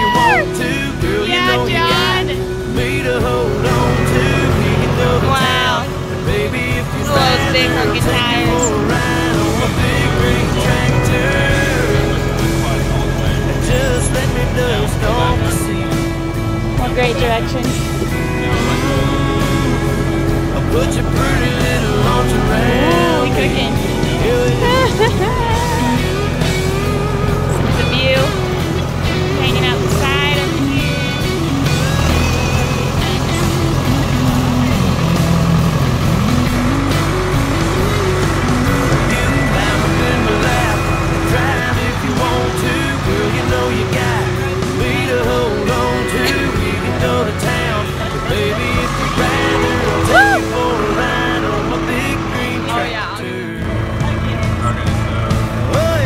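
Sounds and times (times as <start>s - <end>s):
country song playing: 0.0s - 56.0s
people's voices: 0.0s - 56.0s
tractor engine hum: 0.0s - 56.0s.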